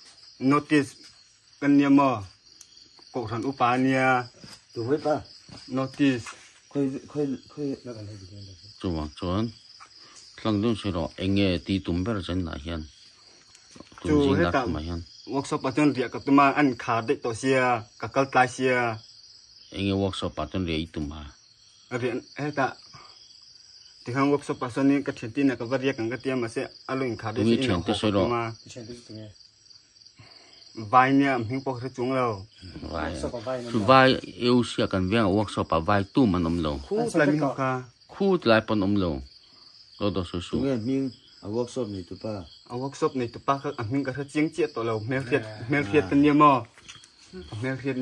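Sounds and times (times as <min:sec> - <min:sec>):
crickets chirring: 0:00.0 - 0:48.0
insects trilling: 0:00.0 - 0:48.0
man talking: 0:24.1 - 0:29.4, 0:40.0 - 0:46.7.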